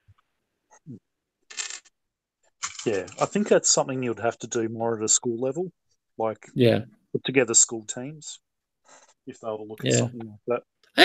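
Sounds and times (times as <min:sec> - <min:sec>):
plastic toy bricks rattling in a tub: 0:02.6 - 0:03.4.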